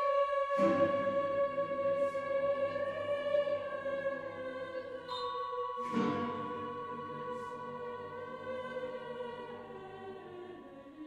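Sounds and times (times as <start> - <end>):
choir-like held chord: 0.0 - 11.0.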